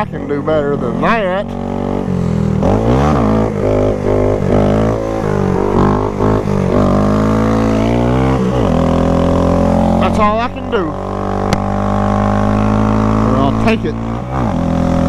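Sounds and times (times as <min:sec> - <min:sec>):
motorcycle engine revving: 0:00.0 - 0:15.0.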